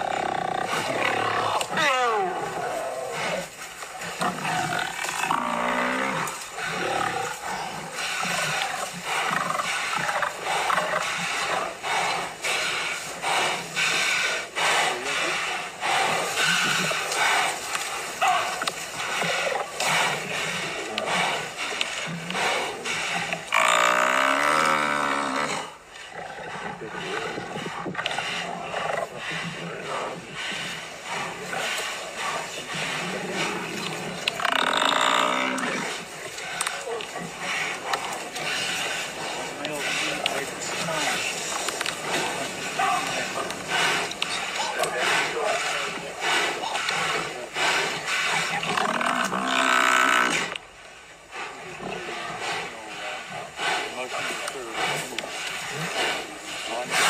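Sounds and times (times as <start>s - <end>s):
lions growling and roaring: 0.0s - 57.0s.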